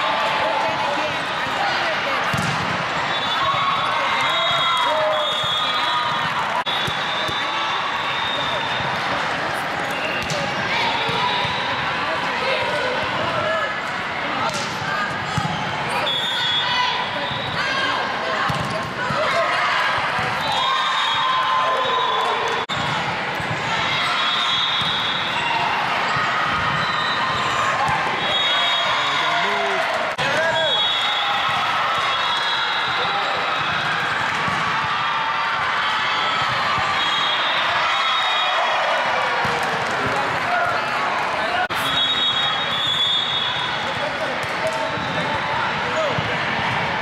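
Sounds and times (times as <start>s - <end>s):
chatter and calls of crowd: 0.0s - 47.0s
volleyball struck and bouncing: 2.3s - 2.8s.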